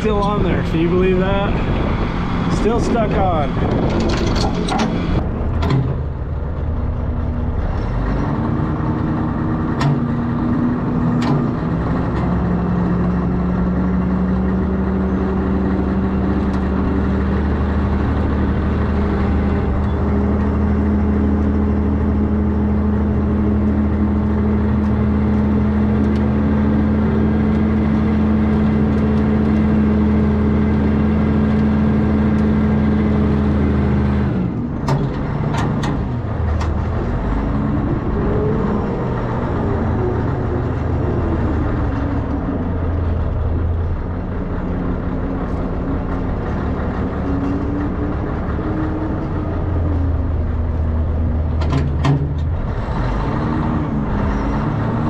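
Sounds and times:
wheel loader diesel engine: 0.0 - 55.0.

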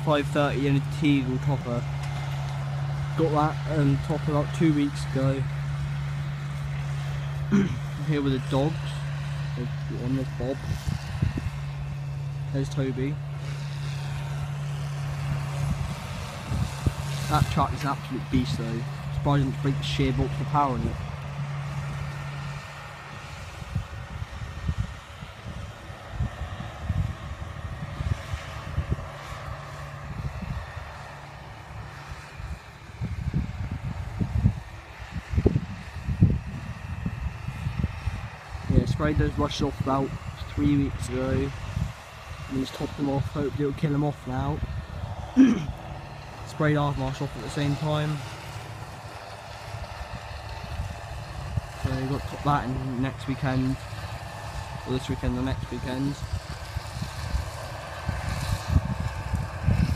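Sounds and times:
distant tractor diesel engine: 0.0 - 59.9.

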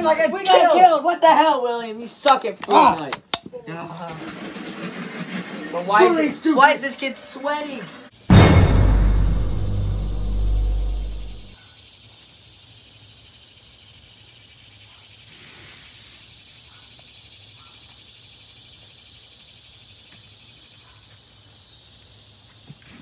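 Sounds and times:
deep boom: 8.3 - 11.6
insects chirring: 10.5 - 23.0.

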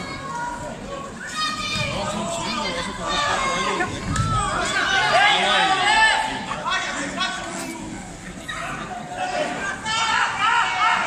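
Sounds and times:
children calling out: 0.0 - 6.2
crowd shouting and chattering: 0.0 - 11.0.

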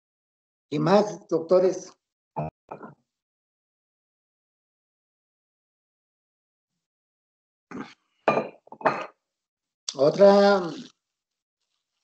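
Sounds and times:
tableware clinking: 8.3 - 9.2.

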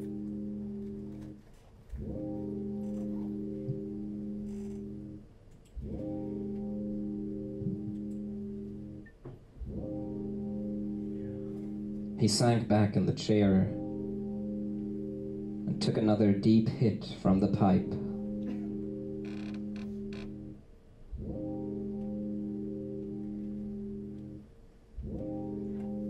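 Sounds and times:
guitar chords ringing: 0.0 - 1.3, 2.0 - 5.2, 5.8 - 16.6, 17.2 - 20.6, 21.2 - 24.4, 25.0 - 26.0.

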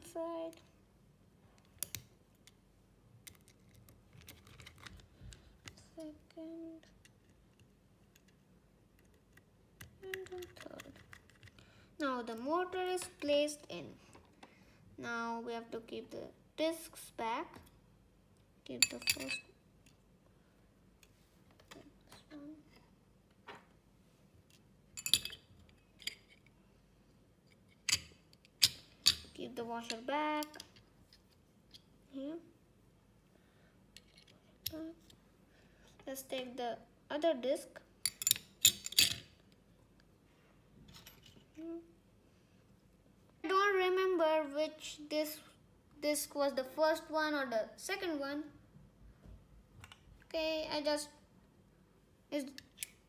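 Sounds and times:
light metallic clicks and clinks: 18.8 - 19.5.

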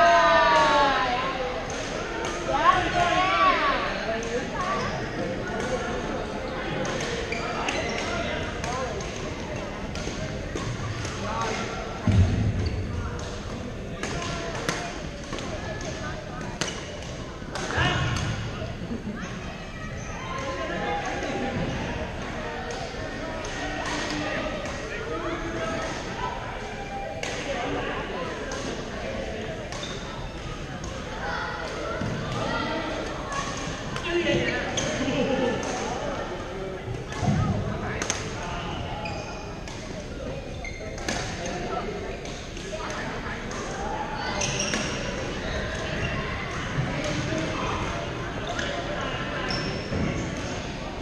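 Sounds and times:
players' voices: 0.0 - 51.0.

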